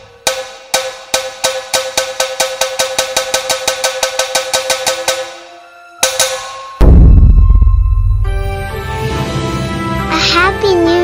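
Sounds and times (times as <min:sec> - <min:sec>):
ringing struck percussion: 0:00.0 - 0:09.0.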